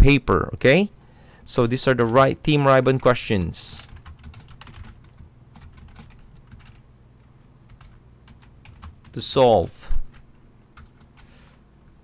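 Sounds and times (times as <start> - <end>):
computer keyboard typing: 1.9 - 6.8, 7.7 - 9.2, 10.1 - 11.3.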